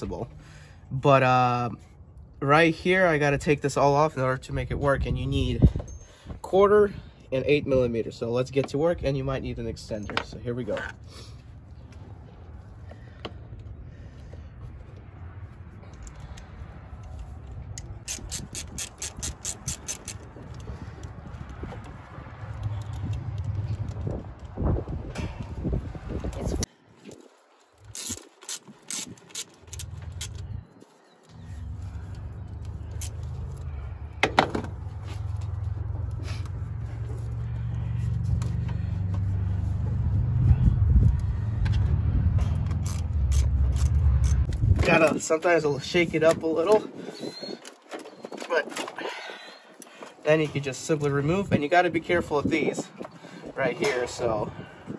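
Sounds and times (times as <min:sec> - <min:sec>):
ratchet clicking: 0:17.8 - 0:20.7, 0:27.8 - 0:30.4, 0:42.6 - 0:44.6
low steady rumble: 0:31.3 - 0:45.0.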